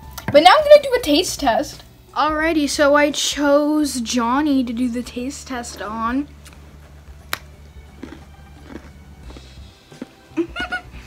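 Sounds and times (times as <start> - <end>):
quiet background music: 0.0 - 11.0
cookie snapping when bitten: 7.3 - 8.9.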